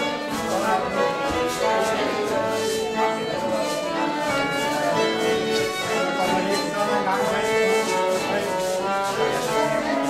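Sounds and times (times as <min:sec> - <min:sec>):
folk dance tune on fiddle: 0:00.0 - 0:10.0.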